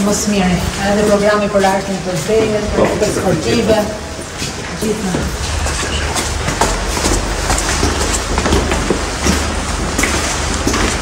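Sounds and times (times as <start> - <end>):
steady low hum: 0.0 - 11.0
footsteps on concrete: 0.7 - 11.0.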